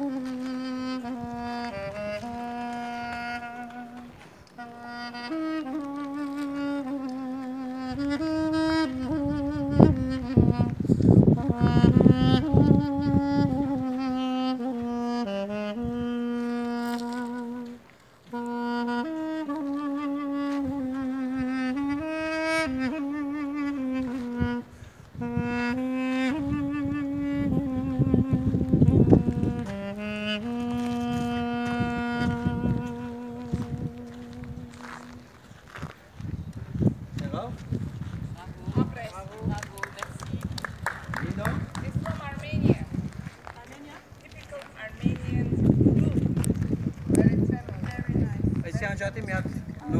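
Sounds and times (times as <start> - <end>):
duduk playing slow melody: 0.0 - 37.0.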